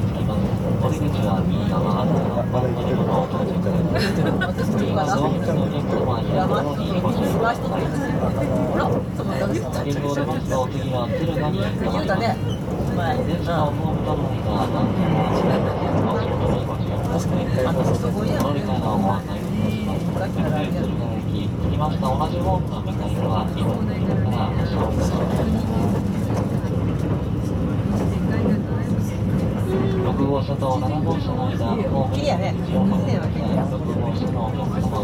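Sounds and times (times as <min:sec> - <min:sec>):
passengers chattering: 0:00.0 - 0:35.0
train running rumble: 0:00.0 - 0:35.0.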